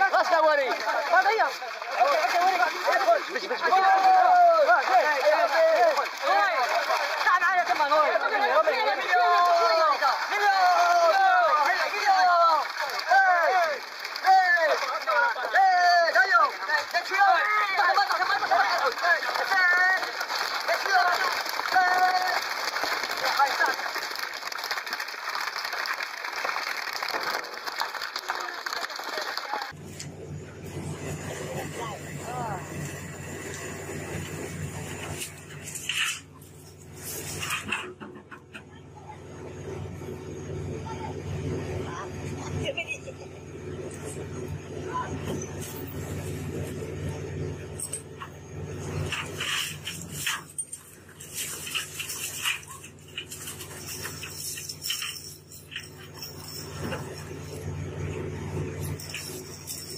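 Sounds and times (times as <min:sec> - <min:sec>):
boat engine drone: 0:00.0 - 0:59.9
men shouting together: 0:02.0 - 0:20.1.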